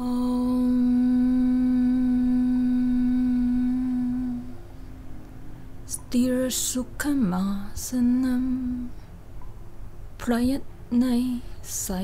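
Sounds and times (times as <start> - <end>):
woman chanting om: 0.0 - 4.6, 5.8 - 9.0, 10.2 - 12.0.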